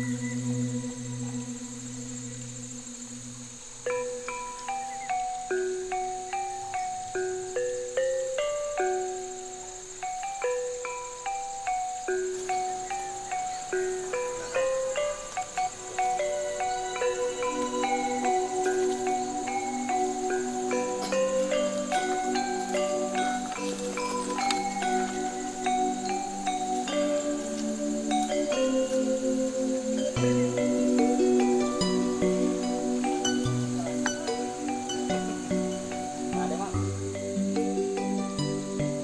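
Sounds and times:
melody of struck notes: 0.0s - 39.0s.

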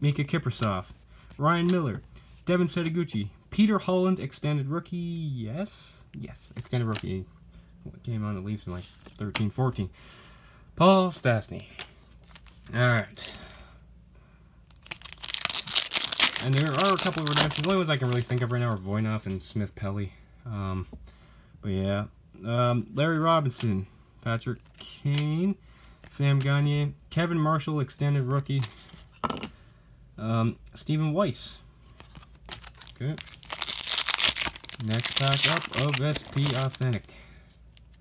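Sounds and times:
foil wrapper tearing and crinkling: 14.7s - 18.4s, 32.2s - 37.1s.

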